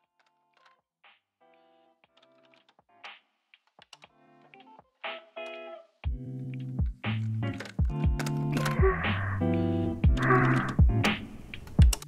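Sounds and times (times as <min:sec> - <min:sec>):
jazz guitar chords: 0:04.3 - 0:11.2.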